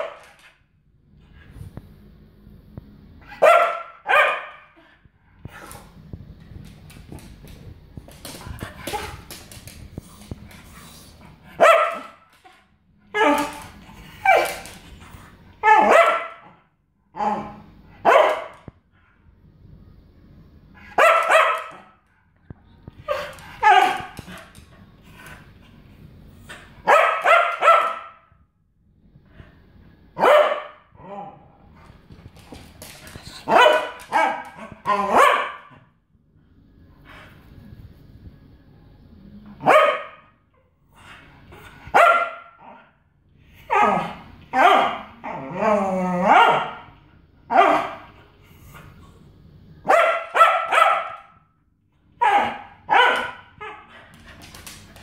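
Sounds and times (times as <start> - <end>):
dog barking: 3.3 - 4.7, 11.6 - 12.2, 15.6 - 16.5, 18.0 - 18.5, 21.0 - 21.9, 26.8 - 28.3, 30.2 - 30.8, 35.1 - 35.7, 39.6 - 40.3, 41.9 - 42.6, 47.5 - 48.0, 49.8 - 51.4, 52.2 - 53.5.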